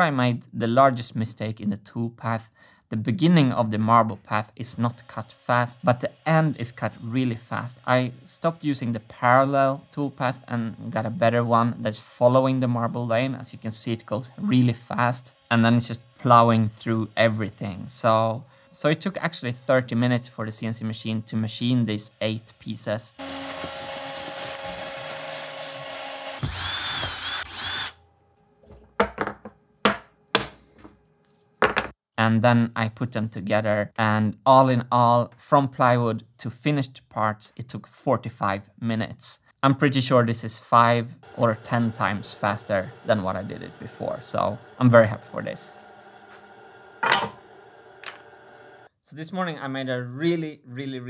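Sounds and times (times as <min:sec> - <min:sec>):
vacuum hose sucking sawdust: 0:04.6 - 0:11.2, 0:12.6 - 0:18.4, 0:21.0 - 0:27.9, 0:41.2 - 0:48.9
disc sander running: 0:04.7 - 0:11.2, 0:13.1 - 0:18.4, 0:21.0 - 0:28.0, 0:41.2 - 0:48.9
cordless drill running: 0:23.2 - 0:28.0, 0:41.2 - 0:48.9.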